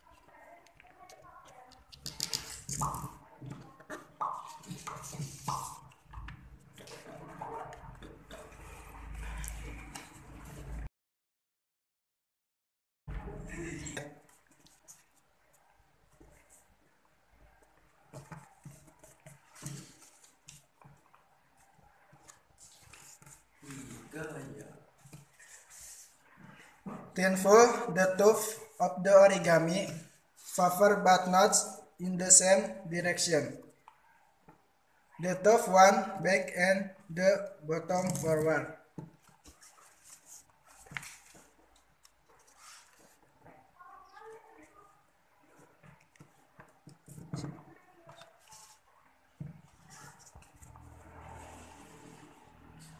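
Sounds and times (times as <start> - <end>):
paper rustling while folded: 39.2 - 43.5
faint background voice: 42.4 - 50.4.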